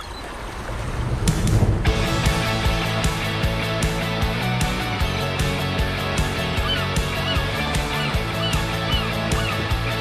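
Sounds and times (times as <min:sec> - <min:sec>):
rushing whoosh: 0:00.5 - 0:04.2
upbeat music with drum beat: 0:01.8 - 0:10.0.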